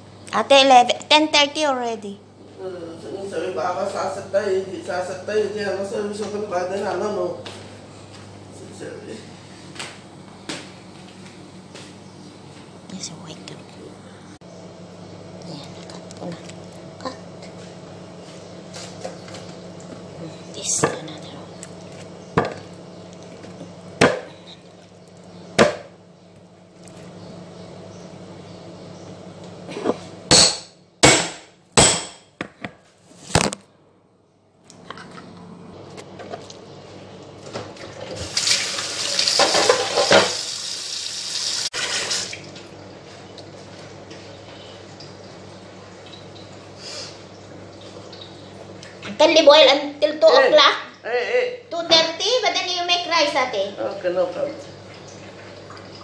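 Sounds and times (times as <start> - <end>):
kitchen sink tap running: 38.1 - 42.5.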